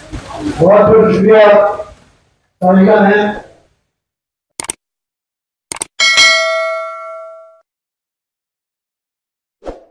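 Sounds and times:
double mouse click: 5.7s - 5.9s
bell chime: 6.0s - 7.6s.

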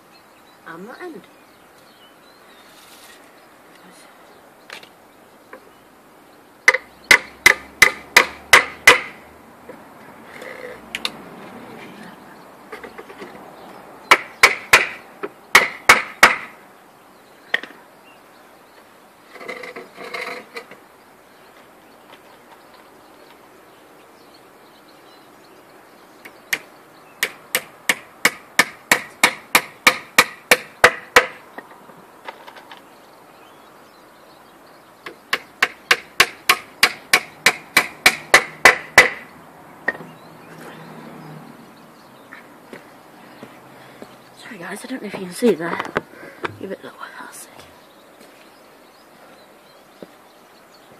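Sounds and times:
hammer driving nails into wood: 6.7s - 9.2s, 14.1s - 16.6s, 27.2s - 31.4s, 35.3s - 39.2s.

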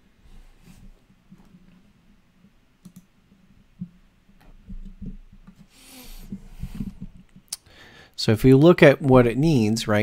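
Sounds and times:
faint clicks: 2.8s - 3.1s.

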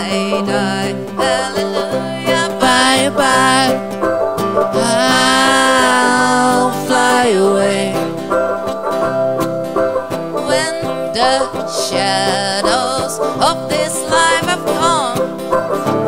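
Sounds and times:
acoustic guitar: 0.0s - 16.0s
ukulele strummed and picked: 0.0s - 16.0s.

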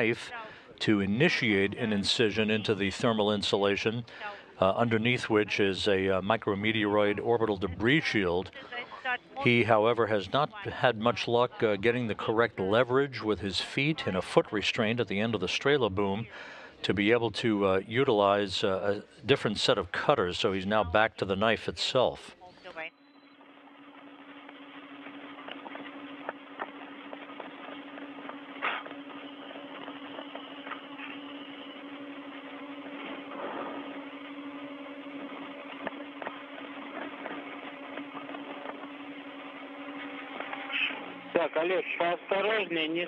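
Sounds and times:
voice speaking over radio: 0.0s - 22.9s, 40.6s - 43.0s
low hum: 0.0s - 42.2s
radio hiss: 0.0s - 43.0s.

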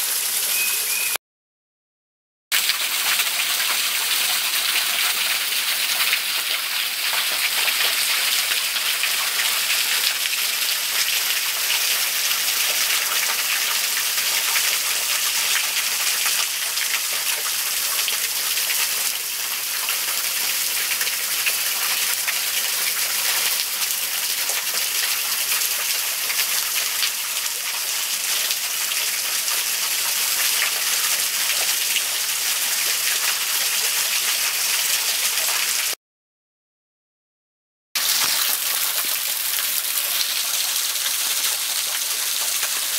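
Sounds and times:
small waterfall splashing on rocks: 2.5s - 36.0s, 38.0s - 42.9s.

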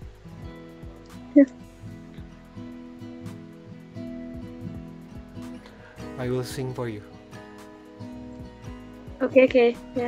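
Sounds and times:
acoustic guitar picking: 0.0s - 10.0s.

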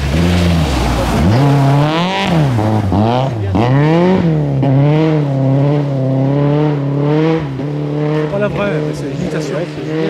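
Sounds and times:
car engine pulling away: 0.0s - 10.0s.

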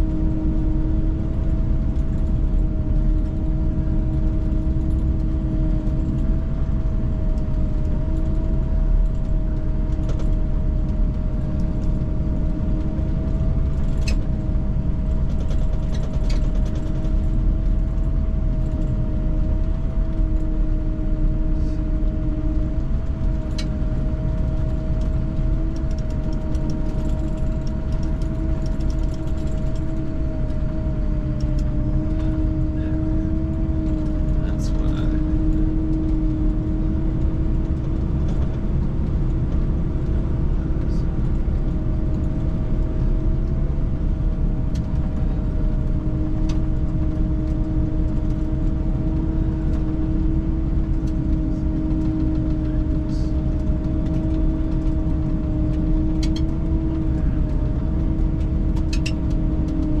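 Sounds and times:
snowcat engine drone with whine: 0.0s - 60.0s
faint clicks and rattles: 1.1s - 60.0s.

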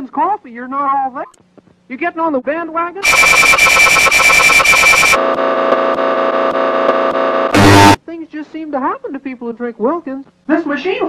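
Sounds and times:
loud electronic blast: 3.0s - 5.2s, 7.5s - 8.0s
harsh pulsing electronic buzz: 3.0s - 8.0s
low electronic drone: 3.0s - 8.0s.

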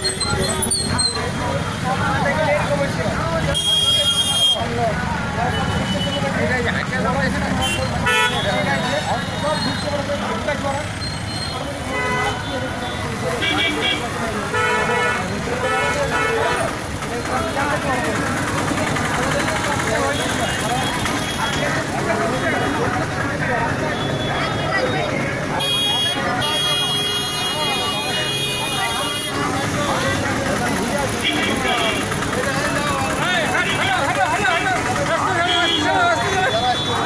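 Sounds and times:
motor traffic passing: 0.0s - 37.0s
people talking: 0.0s - 37.0s
vehicle horns honking: 3.5s - 4.7s, 7.6s - 10.0s, 11.2s - 16.7s, 23.8s - 29.4s, 31.2s - 32.3s, 35.3s - 37.0s.

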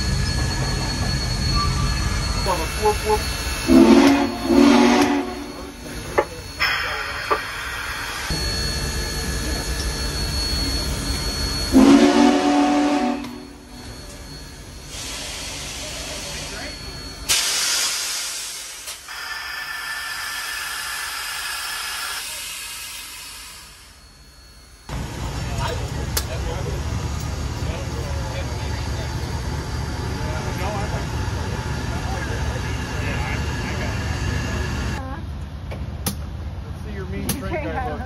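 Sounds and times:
steam whistle blasts: 2.8s - 5.7s, 11.7s - 13.8s
steam hissing: 13.7s - 24.8s
rush of steam: 14.7s - 24.0s.

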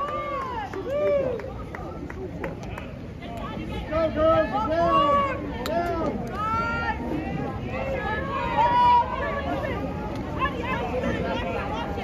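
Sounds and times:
spectators shouting and chattering: 0.0s - 12.0s.

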